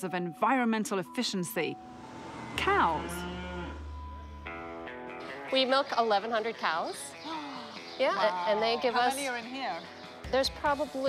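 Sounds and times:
cow mooing: 1.8s - 5.5s.

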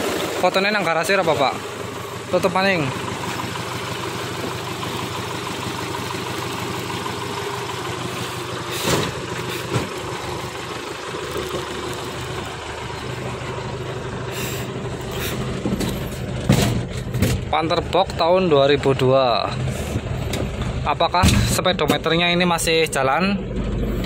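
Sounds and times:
diesel engine idling: 0.0s - 24.0s.

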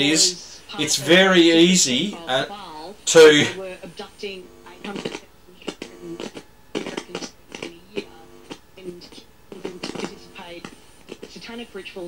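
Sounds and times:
faint radio voice talking: 0.0s - 12.0s.

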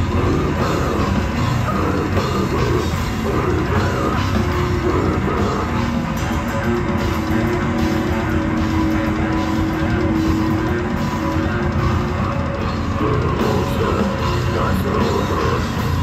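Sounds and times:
distorted guitars: 0.0s - 16.0s
drums: 0.0s - 16.0s.

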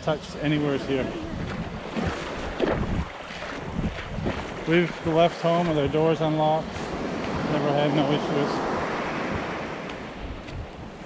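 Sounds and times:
small waves on sandy beach: 0.0s - 11.0s
wind on microphone: 0.0s - 11.0s.

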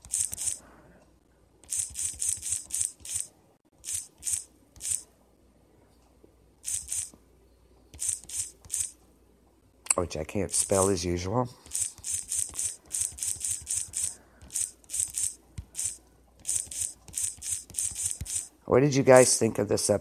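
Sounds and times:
typing on computer keyboard: 0.0s - 0.6s, 1.6s - 5.0s, 7.9s - 8.9s, 11.6s - 18.5s.

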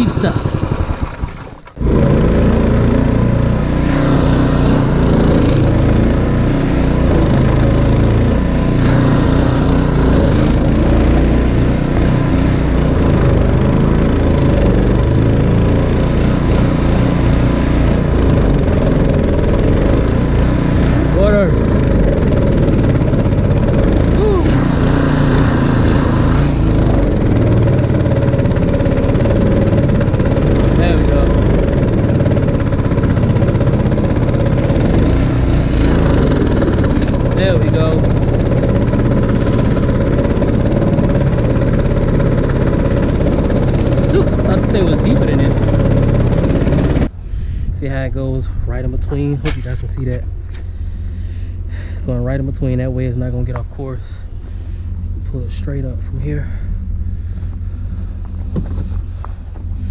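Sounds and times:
small boat engine running: 0.0s - 59.9s
wind: 0.0s - 59.9s.

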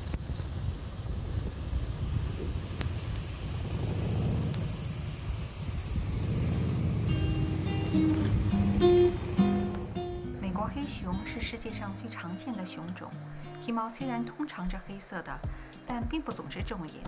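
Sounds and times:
wind on microphone: 0.0s - 11.8s
vehicle rumble: 0.0s - 11.9s
acoustic guitar music: 7.1s - 14.3s.

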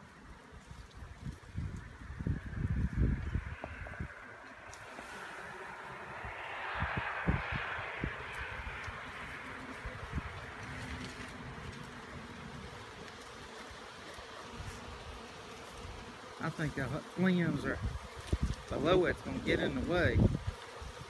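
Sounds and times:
bee swarm buzzing: 0.0s - 21.0s
leaves rustling: 0.0s - 21.0s.

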